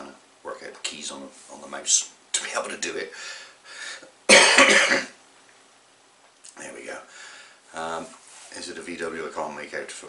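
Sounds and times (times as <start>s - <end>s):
man coughing: 4.3s - 5.2s.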